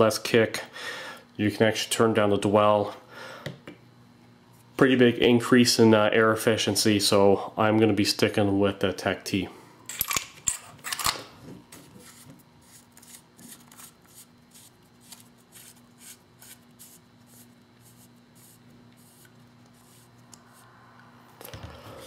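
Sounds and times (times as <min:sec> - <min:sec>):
faint steady hum: 0:00.0 - 0:22.0.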